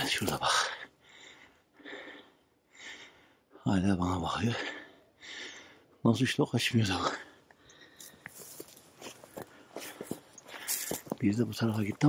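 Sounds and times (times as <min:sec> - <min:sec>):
footsteps on dry grass and stones: 0:00.0 - 0:00.6, 0:07.8 - 0:12.0.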